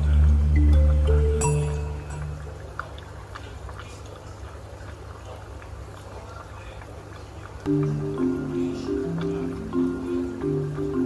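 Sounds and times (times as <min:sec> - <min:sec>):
low aerator hum: 0:00.0 - 0:03.2
air bubbles ticking in water: 0:00.0 - 0:11.0.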